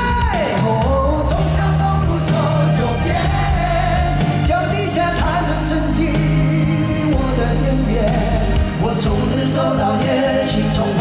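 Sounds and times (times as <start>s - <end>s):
live band playing pop-rock ballad: 0.0s - 11.0s
man singing: 0.0s - 11.0s
steady bass line: 0.0s - 11.0s.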